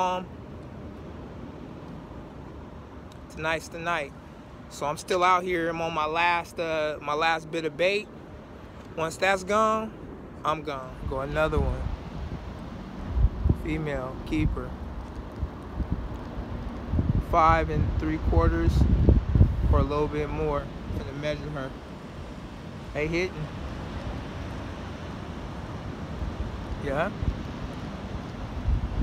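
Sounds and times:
outdoor hiss and rumble: 0:00.0 - 0:29.0
wind buffeting microphone: 0:00.0 - 0:29.0.

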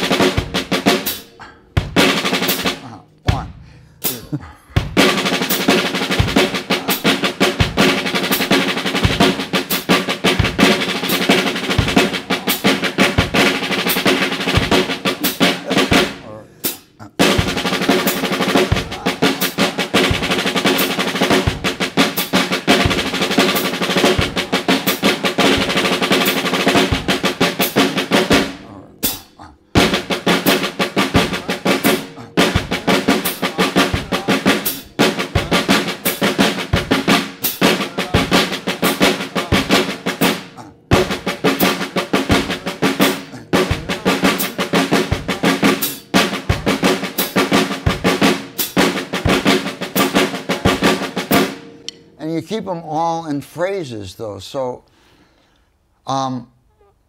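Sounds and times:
snare drum rapid strokes: 0:00.0 - 0:03.4, 0:04.9 - 0:52.0
bass drum keeping time: 0:00.0 - 0:53.3.

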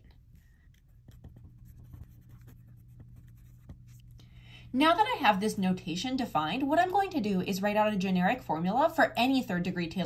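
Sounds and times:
pen scratching on paper: 0:00.3 - 0:04.0.

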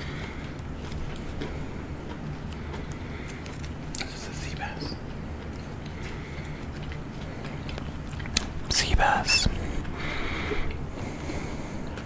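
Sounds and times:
person chewing raw fish: 0:00.0 - 0:04.1, 0:04.9 - 0:08.7, 0:09.5 - 0:12.0
steady low hum: 0:00.0 - 0:12.0.

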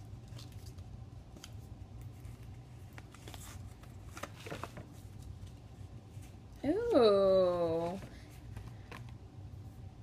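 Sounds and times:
packaging rustling and crinkling: 0:00.2 - 0:06.3.

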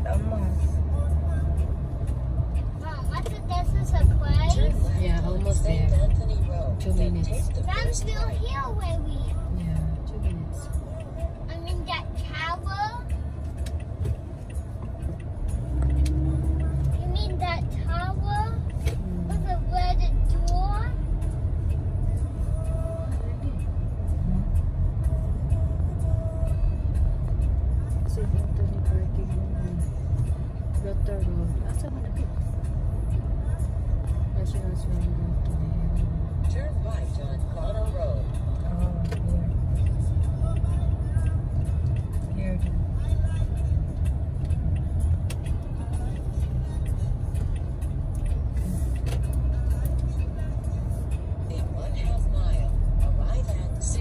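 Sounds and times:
car driving interior rumble: 0:00.0 - 0:54.0.

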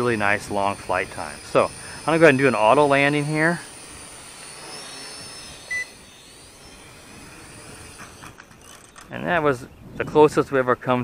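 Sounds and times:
toy drone motors whining: 0:00.0 - 0:09.2.

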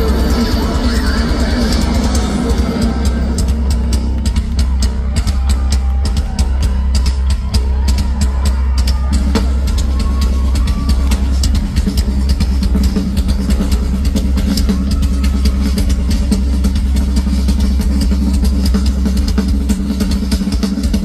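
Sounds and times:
drum kit playing fast: 0:00.0 - 0:21.0.

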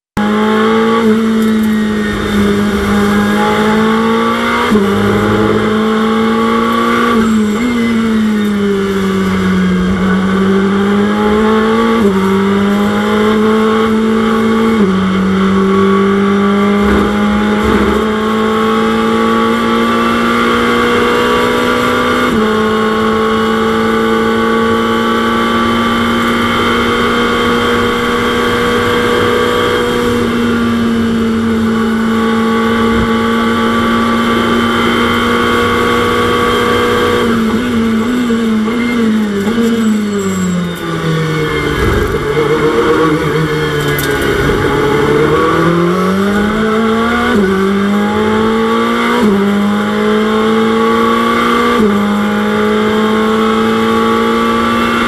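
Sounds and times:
race car engine running hard: 0:00.2 - 0:55.0.

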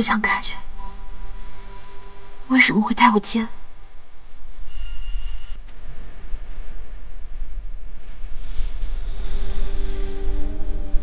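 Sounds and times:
low steady rumble: 0:00.0 - 0:04.8
faint thin high tone: 0:04.7 - 0:05.6.

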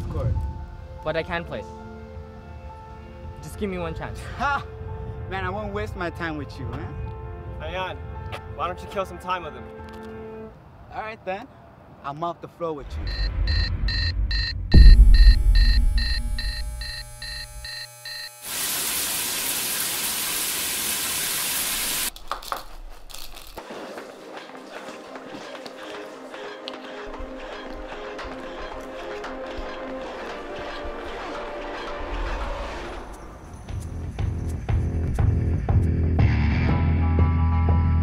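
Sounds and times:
soft background music: 0:00.0 - 0:11.0
loud deep boom: 0:12.8 - 0:16.3
alarm clock ringing: 0:14.8 - 0:18.3.

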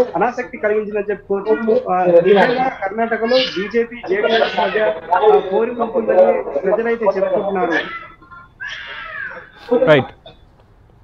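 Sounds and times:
man speaking: 0:00.0 - 0:08.0, 0:09.7 - 0:10.2.

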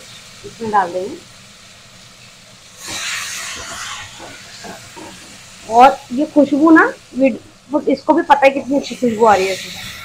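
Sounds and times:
vegetables sizzling in hot oil: 0:00.0 - 0:10.0.

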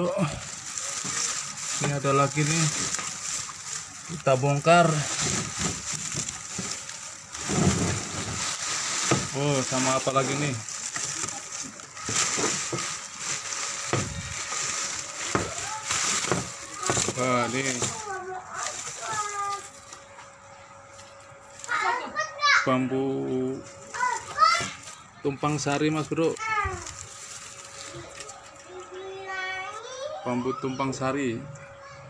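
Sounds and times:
dry bamboo leaves rustling: 0:00.0 - 0:30.1.

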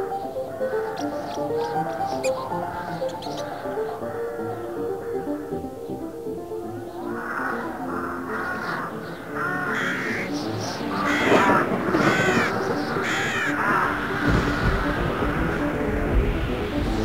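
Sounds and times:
music soundtrack: 0:00.0 - 0:17.0
crow cawing: 0:07.0 - 0:14.6.

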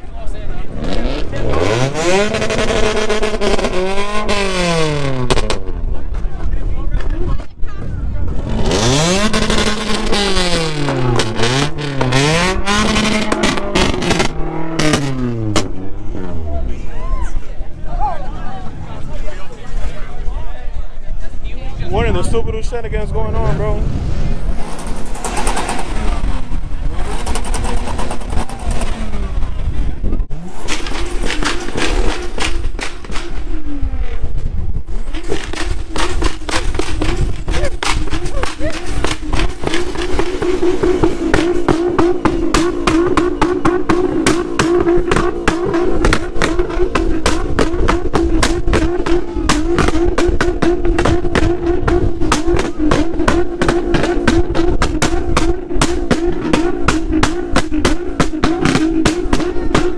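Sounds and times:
car engine at high revs: 0:00.0 - 0:06.2, 0:08.2 - 0:16.8, 0:23.3 - 0:59.9
rapid engine crackle: 0:24.4 - 0:59.9.

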